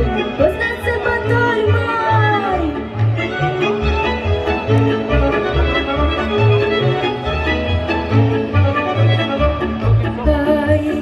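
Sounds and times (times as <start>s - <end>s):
fiddle melody: 0.0s - 11.0s.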